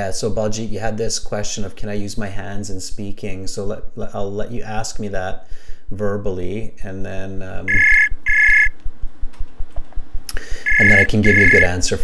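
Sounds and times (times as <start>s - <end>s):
double electronic ringing beep: 7.7s - 8.7s, 10.6s - 11.8s.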